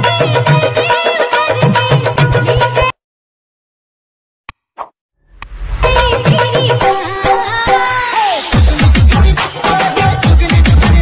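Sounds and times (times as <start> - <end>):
music: 0.0 - 3.0, 5.7 - 11.0.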